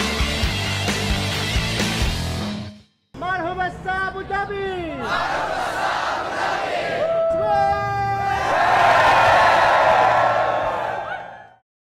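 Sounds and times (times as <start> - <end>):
crowd cheering and yelling: 5.0 - 11.6.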